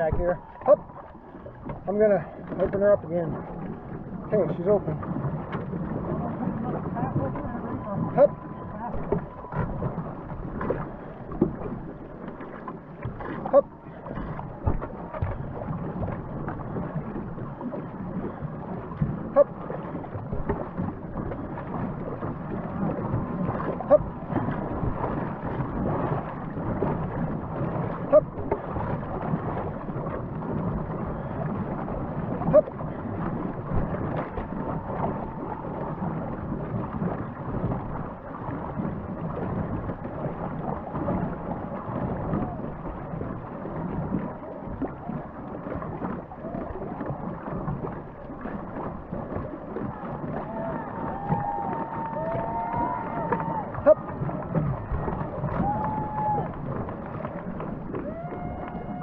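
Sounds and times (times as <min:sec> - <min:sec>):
water splashing along canoe hull: 0:00.0 - 0:59.0.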